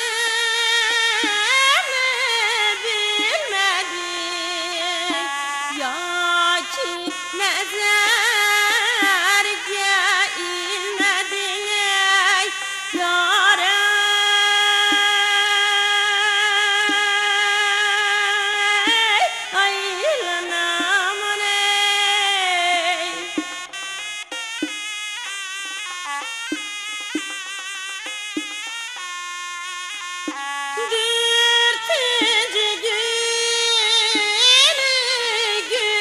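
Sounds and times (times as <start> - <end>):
woman singing: 0.0 - 23.7, 30.7 - 36.0
sharp drum strikes: 23.2 - 28.8.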